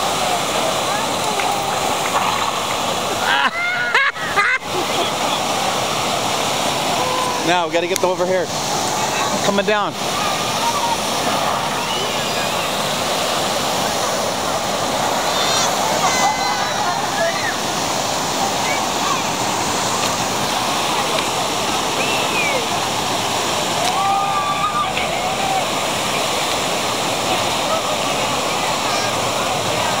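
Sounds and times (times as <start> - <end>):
water cascading over a ledge: 0.0 - 30.0
faint voices calling out: 13.7 - 19.6.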